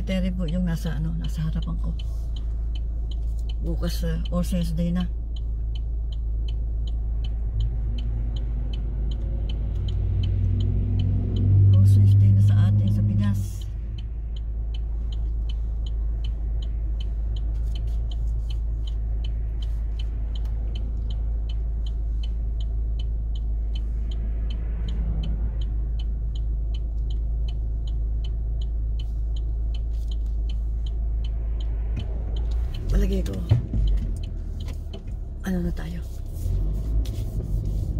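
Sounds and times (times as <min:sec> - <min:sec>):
fast even ticking: 0:00.0 - 0:36.3
car engine idling: 0:00.0 - 0:37.9.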